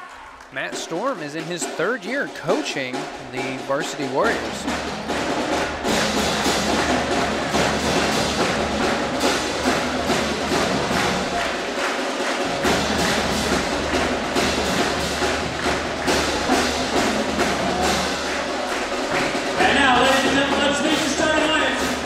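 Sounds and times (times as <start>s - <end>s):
drums playing rhythmic beat: 0.0s - 22.0s.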